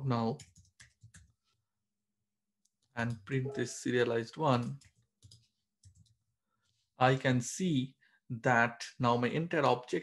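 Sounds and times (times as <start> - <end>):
computer keyboard clicks: 0.4 - 1.3, 4.6 - 6.2.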